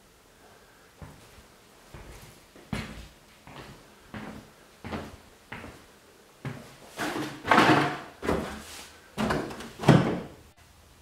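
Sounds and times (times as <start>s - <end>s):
footsteps on bare floor: 1.0s - 10.0s.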